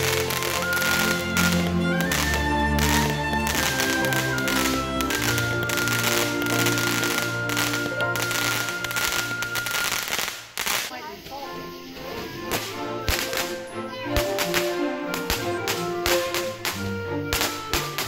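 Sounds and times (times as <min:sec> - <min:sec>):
music with sustained notes: 0:00.0 - 0:10.2, 0:10.9 - 0:18.0
fireworks cracking and popping: 0:00.0 - 0:18.0.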